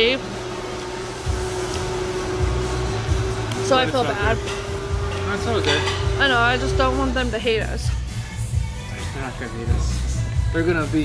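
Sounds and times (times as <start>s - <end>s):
steady machine hum: 0.0s - 10.5s.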